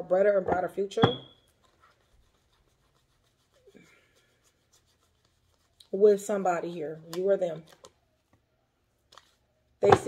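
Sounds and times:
woman's voice: 0.0 - 1.2, 5.9 - 7.7.

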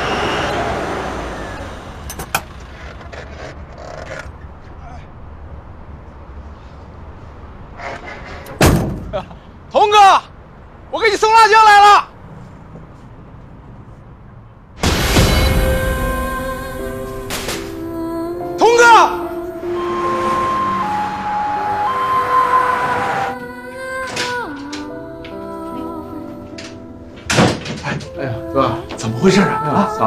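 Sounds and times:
road noise: 0.0 - 30.0
truck door slamming: 8.5 - 9.3, 26.6 - 28.2
two-tone ambulance siren: 18.6 - 23.5.

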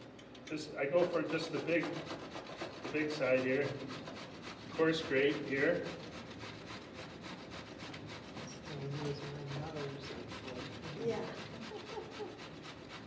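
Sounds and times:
zucchini rasping on a hand grater: 1.0 - 13.0.

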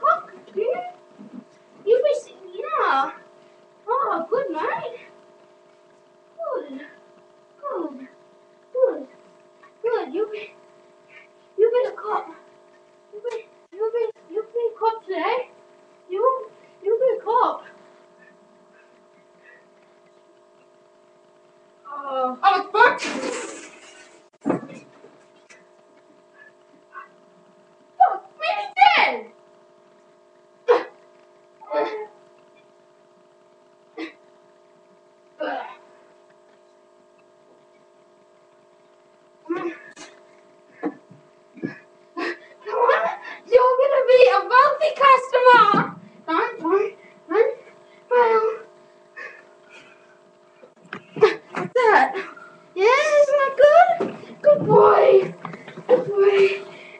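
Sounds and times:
faint steady hum: 0.0 - 56.9.

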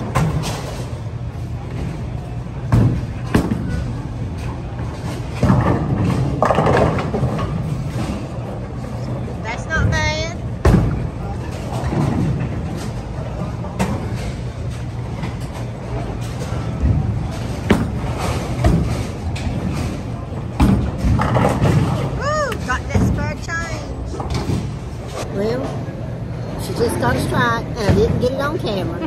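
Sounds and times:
bowling balls crashing into pins: 1.8 - 8.8, 10.5 - 23.2.

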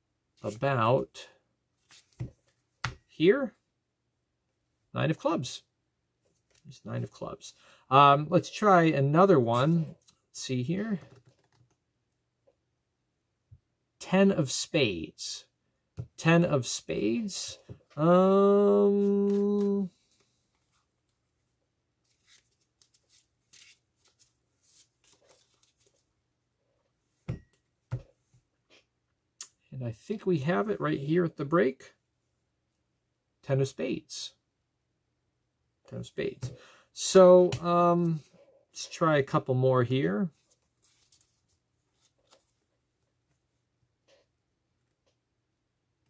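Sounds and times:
playing cards being handled: 1.8 - 3.1, 9.4 - 10.2, 17.2 - 20.9, 22.0 - 26.1, 40.3 - 42.6
playing cards clicking: 19.1 - 19.8.

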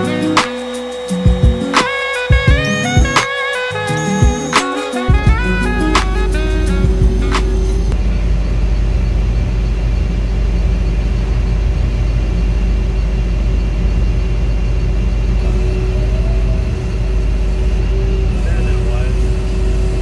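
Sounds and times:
diesel engine running: 0.0 - 20.0.

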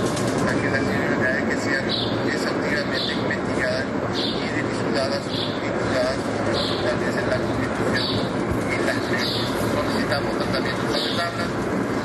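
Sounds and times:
dense steady background noise: 0.0 - 12.0
indistinct voices: 0.0 - 12.0.

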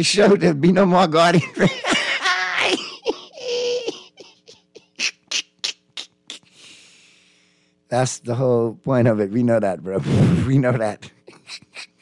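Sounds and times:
man laughing breathily: 1.5 - 6.8, 11.2 - 12.0.

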